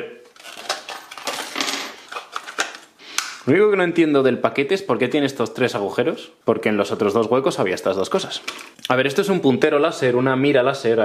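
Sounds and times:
plastic packaging crackling: 0:00.3 - 0:03.3.

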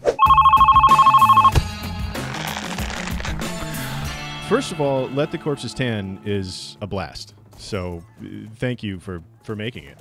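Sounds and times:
electronic telephone ring: 0:00.2 - 0:01.6
background music: 0:00.2 - 0:10.0.

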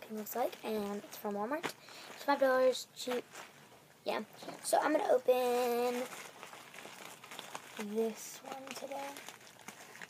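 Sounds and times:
girl's voice: 0:00.0 - 0:03.3, 0:04.0 - 0:06.2, 0:07.8 - 0:09.2
rustling of wrapped presents: 0:00.0 - 0:10.0
paper crinkles: 0:05.4 - 0:10.0.

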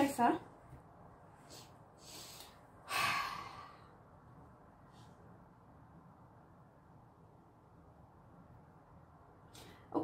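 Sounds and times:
soft breaths: 0:01.2 - 0:05.5.

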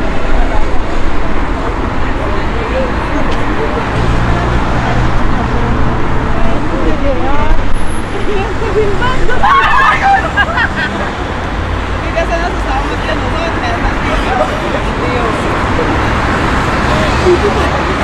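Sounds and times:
passers-by talking indistinctly: 0:00.0 - 0:18.0
traffic rumble: 0:00.0 - 0:18.0.

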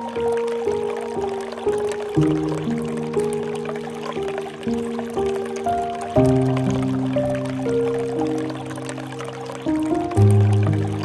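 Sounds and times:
soft instrumental music: 0:00.0 - 0:11.0
water trickling into pool: 0:00.0 - 0:11.0.

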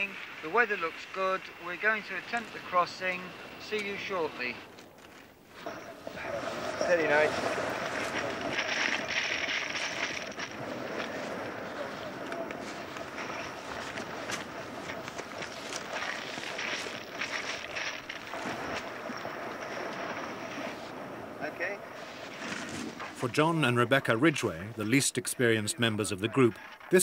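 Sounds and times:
steady hiss: 0:00.0 - 0:10.1
rustling through long grass: 0:00.0 - 0:24.6.

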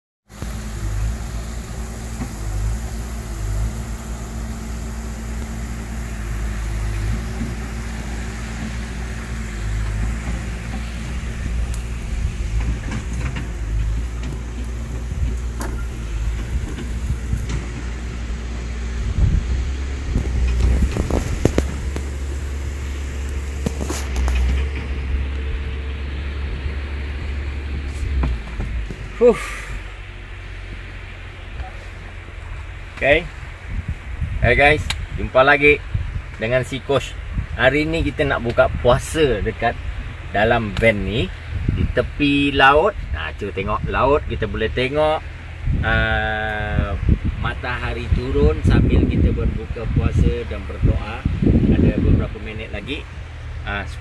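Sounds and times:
vehicle engine idling: 0:00.3 - 0:54.0.

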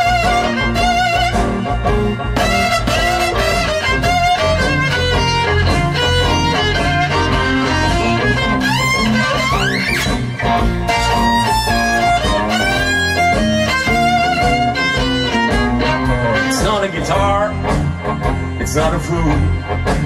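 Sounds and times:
bowed string instrument: 0:00.0 - 0:19.8
electric guitar: 0:00.0 - 0:20.0.

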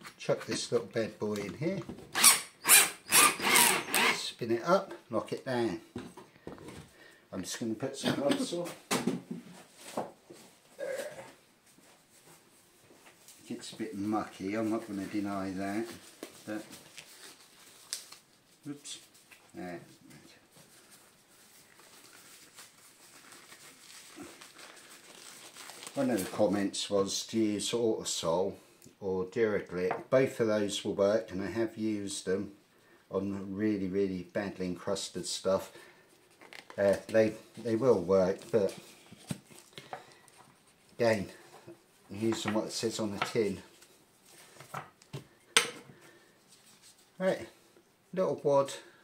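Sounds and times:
disposable gloves rustling: 0:09.5 - 0:26.6, 0:35.9 - 0:47.8.

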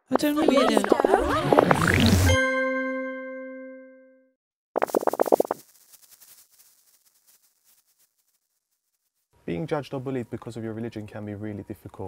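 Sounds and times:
cartoon fluttering pulses: 0:00.1 - 0:02.4, 0:04.8 - 0:08.4.

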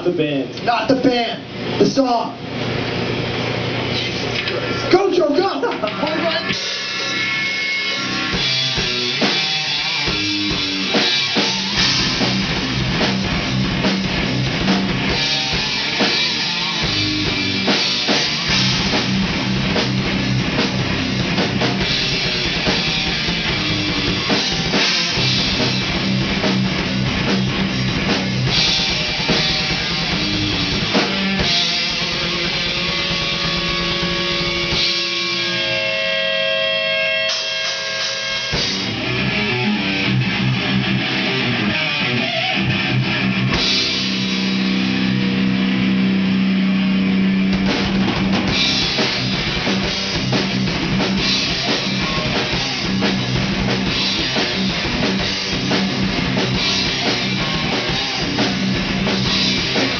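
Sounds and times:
bass guitar: 0:00.0 - 0:59.9
distorted electric guitars: 0:00.0 - 0:59.9
drum kit: 0:01.1 - 0:59.9.

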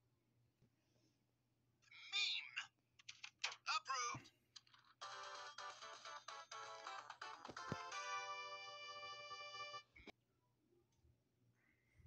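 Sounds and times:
cartoon character voice: 0:01.9 - 0:02.8, 0:03.4 - 0:04.2
music jingle: 0:05.0 - 0:09.9.

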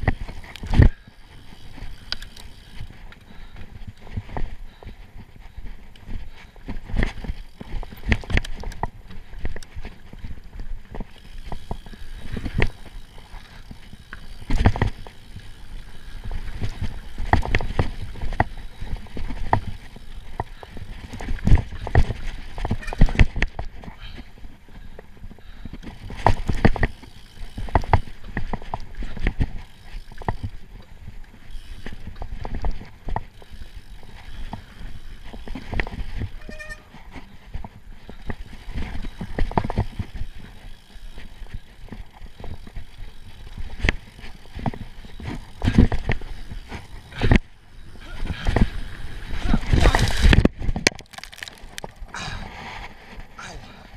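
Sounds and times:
bike knocks and rattles: 0:00.0 - 0:53.3
bike tyres rumbling on dirt: 0:00.0 - 0:53.9.

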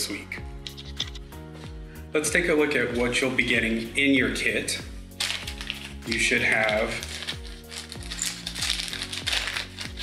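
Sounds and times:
background music: 0:00.0 - 0:10.0
plastic bag crinkling: 0:05.2 - 0:10.0.

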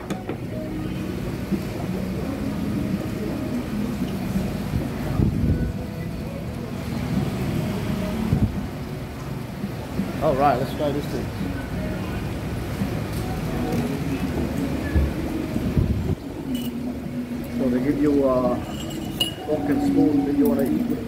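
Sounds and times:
faint background music: 0:00.0 - 0:21.0
passing traffic rumble: 0:00.0 - 0:21.0.

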